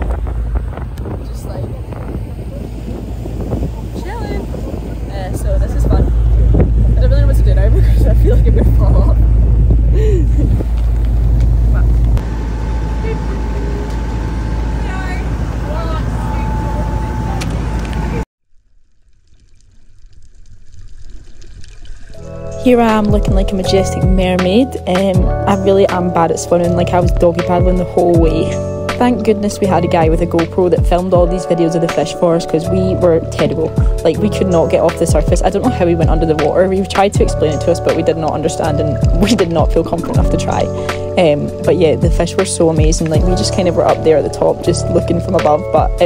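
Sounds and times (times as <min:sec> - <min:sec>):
wind buffeting microphone: 0:00.0 - 0:18.2, 0:20.8 - 0:46.0
motorboat engine rumble: 0:00.0 - 0:46.0.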